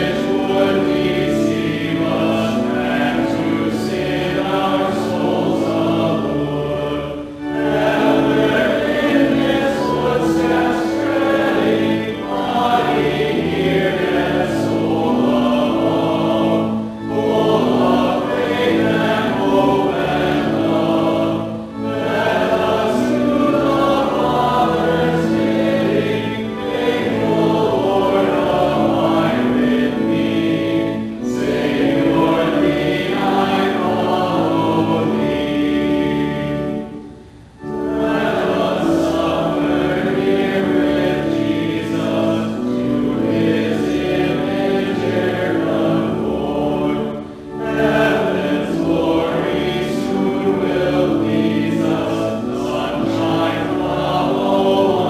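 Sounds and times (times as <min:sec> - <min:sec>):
group singing a hymn: 0:00.0 - 0:55.0.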